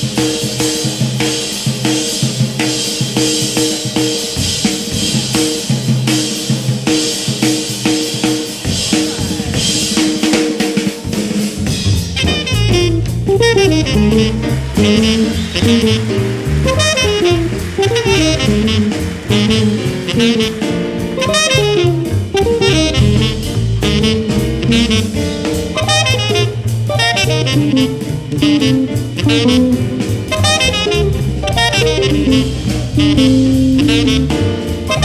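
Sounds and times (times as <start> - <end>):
drum kit cymbals and drums: 0.0 - 35.0
tenor saxophone playing jazz: 12.0 - 35.0.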